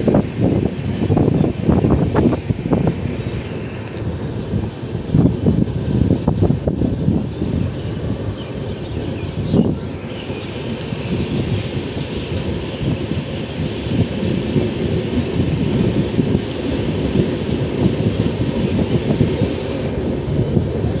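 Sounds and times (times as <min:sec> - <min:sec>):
train knocks and rattles: 0:00.0 - 0:21.0
train wheels rumbling on rails: 0:00.0 - 0:21.0.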